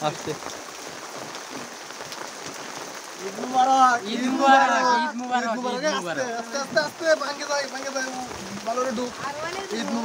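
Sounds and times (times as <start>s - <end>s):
raindrop ticks: 0.0s - 4.3s, 5.0s - 10.0s
steady rain hiss: 0.0s - 10.0s.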